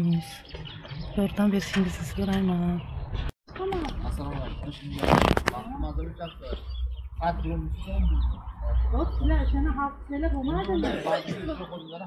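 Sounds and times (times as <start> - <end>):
people talking: 0.0 - 0.4, 1.2 - 2.8, 7.2 - 12.0
loud rustle: 5.0 - 5.6.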